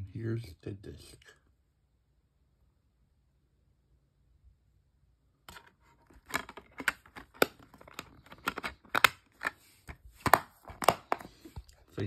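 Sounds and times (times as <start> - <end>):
plastic case clicks and snaps: 5.5 - 11.3.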